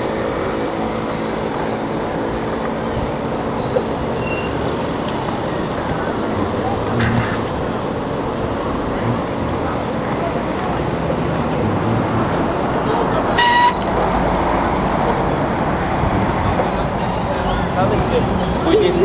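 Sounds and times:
road and traffic noise: 0:00.0 - 0:19.0.

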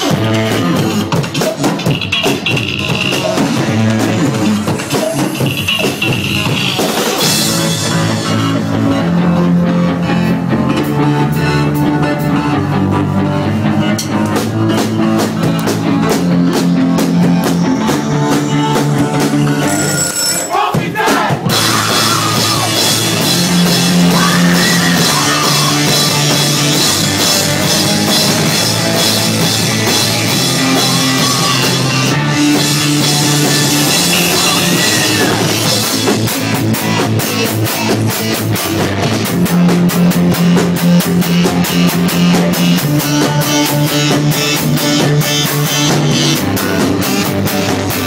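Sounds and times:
drums and cymbals crashing: 0:00.0 - 0:09.1, 0:13.9 - 0:48.0
rock band playing: 0:00.0 - 0:48.0.

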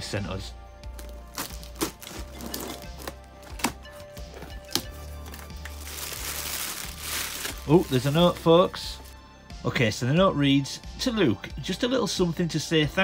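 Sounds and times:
background music with bass line: 0:00.0 - 0:13.0
plastic packing rustling: 0:00.9 - 0:09.2.

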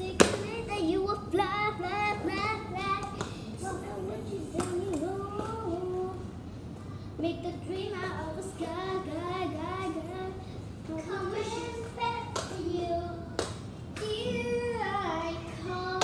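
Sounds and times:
girl singing: 0:00.0 - 0:06.4, 0:07.2 - 0:16.0.

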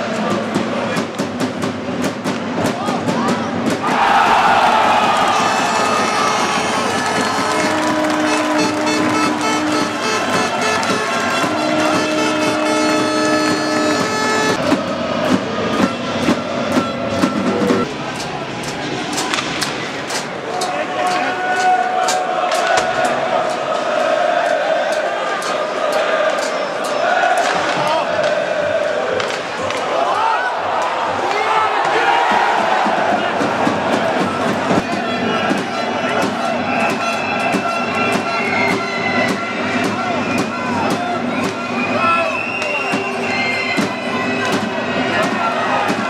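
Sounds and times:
crowd cheering: 0:02.6 - 0:46.0
arena music with held notes: 0:04.0 - 0:27.4.

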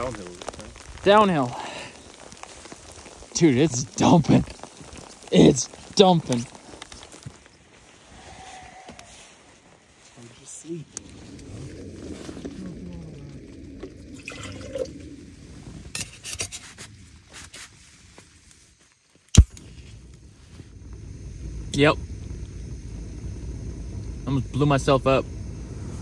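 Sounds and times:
sharp loud pop: 0:19.3 - 0:19.7.

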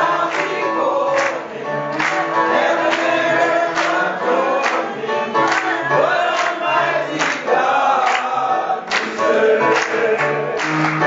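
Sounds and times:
congregation singing gospel: 0:00.0 - 0:11.0
hands clapping on the beat: 0:00.0 - 0:11.0
piano: 0:00.0 - 0:11.0.

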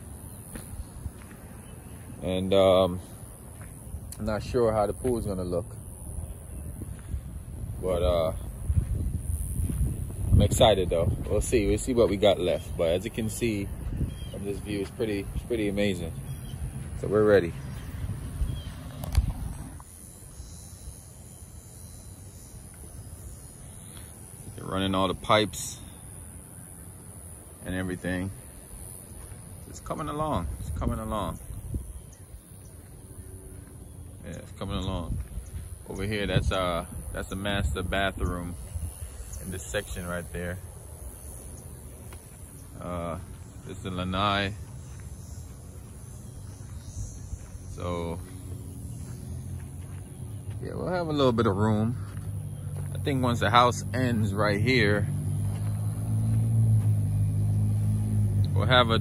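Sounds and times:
outdoor background rumble: 0:00.0 - 0:59.0
wind on microphone: 0:06.2 - 0:12.0, 0:13.7 - 0:14.5, 0:17.8 - 0:19.8.

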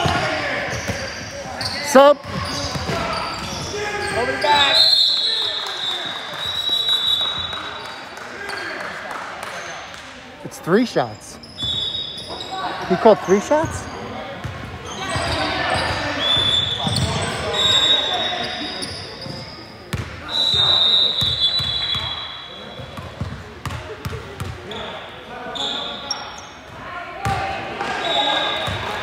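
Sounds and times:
people chatting in gym: 0:00.0 - 0:29.0.

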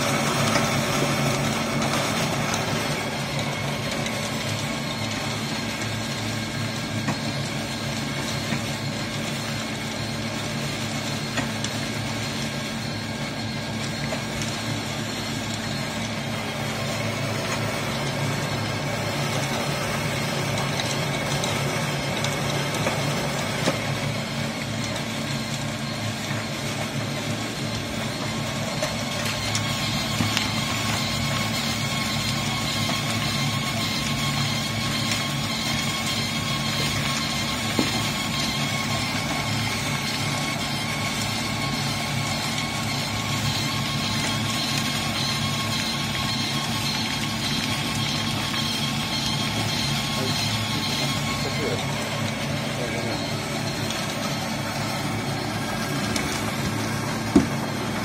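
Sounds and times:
pellet press machine drone: 0:00.0 - 0:58.0.

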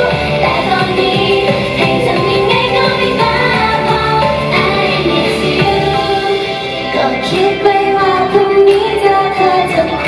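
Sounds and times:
upbeat backing music: 0:00.0 - 0:10.0
woman singing into microphone: 0:00.0 - 0:10.0.

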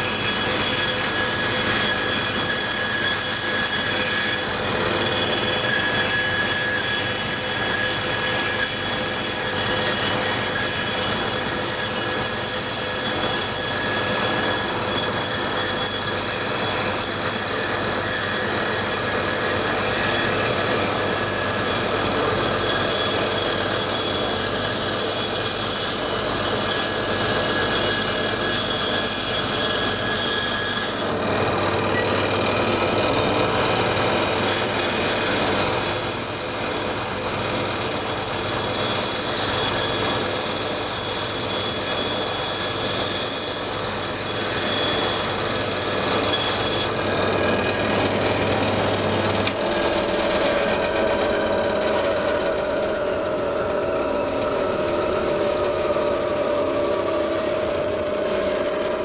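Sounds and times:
bandsaw cutting wood: 0:33.4 - 0:37.9, 0:43.7 - 0:59.0.

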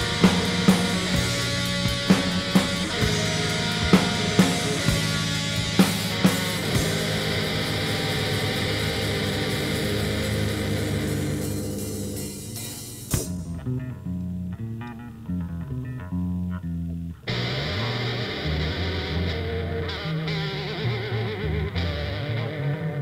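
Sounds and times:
heavy rock band with distorted guitar: 0:00.0 - 0:13.9, 0:17.3 - 0:23.0
bass guitar playing alone: 0:00.0 - 0:23.0.

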